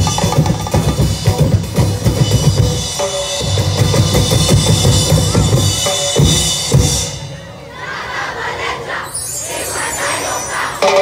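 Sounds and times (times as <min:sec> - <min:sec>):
drumming: 0:00.0 - 0:07.4, 0:10.8 - 0:11.0
crowd cheering and shouting: 0:07.3 - 0:11.0.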